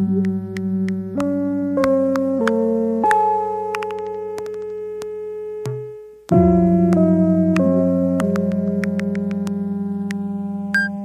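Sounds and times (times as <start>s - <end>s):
low keyboard note: 5.7s - 11.0s.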